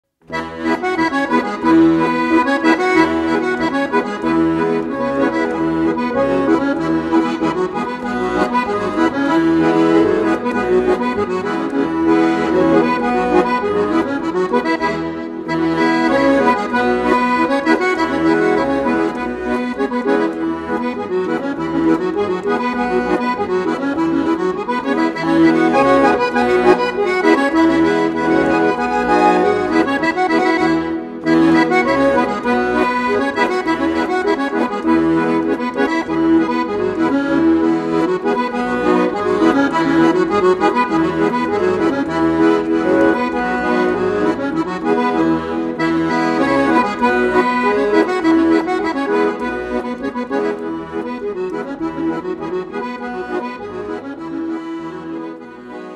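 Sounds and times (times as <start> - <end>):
instrumental music with held notes: 0.1 - 55.9.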